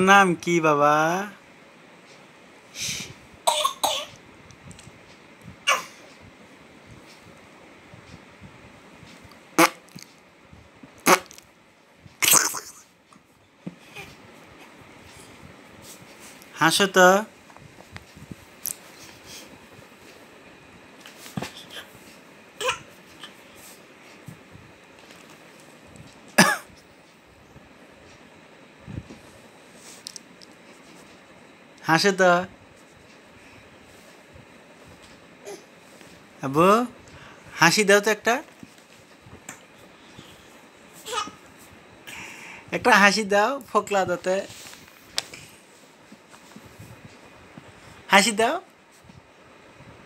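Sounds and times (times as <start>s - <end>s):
infant making cough-like sounds: 3.5s - 4.2s, 5.7s - 6.0s, 12.2s - 12.8s, 26.4s - 26.7s.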